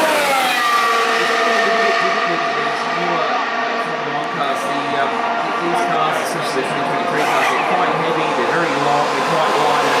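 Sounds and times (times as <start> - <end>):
racing car engine running steadily: 0.0 - 10.0.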